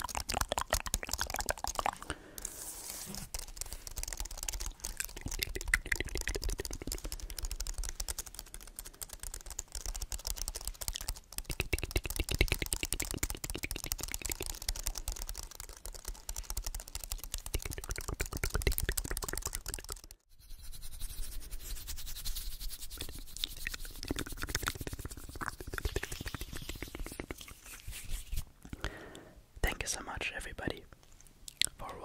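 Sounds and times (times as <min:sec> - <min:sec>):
rapid keyboard key clicking: 0:03.2 - 0:20.1.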